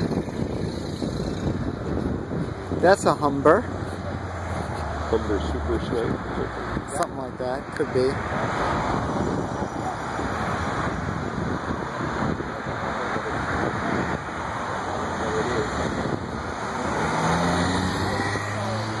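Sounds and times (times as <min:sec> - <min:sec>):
road traffic: 0:00.0 - 0:19.0
steady engine hum: 0:00.0 - 0:19.0.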